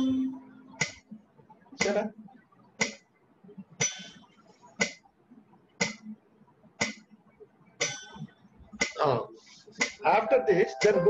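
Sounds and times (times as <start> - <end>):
metronome ticking: 9.8 - 11.0.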